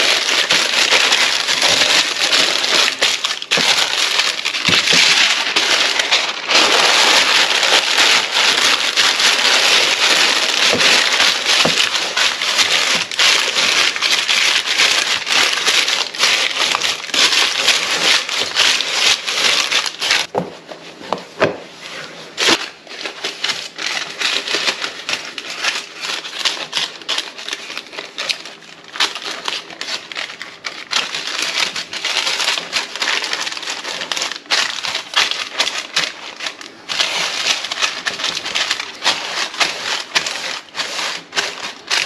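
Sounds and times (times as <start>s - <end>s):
baking paper crinkling: 0.0s - 42.0s.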